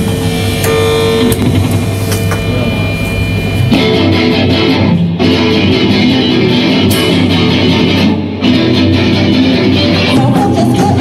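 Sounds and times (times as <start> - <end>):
bass guitar: 0.0 - 11.0
electric guitar: 0.0 - 11.0
drum hits: 1.1 - 4.7.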